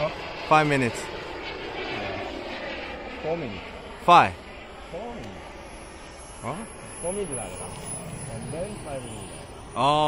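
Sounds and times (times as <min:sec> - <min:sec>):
model jet turbine rushing overhead: 0:00.0 - 0:10.0.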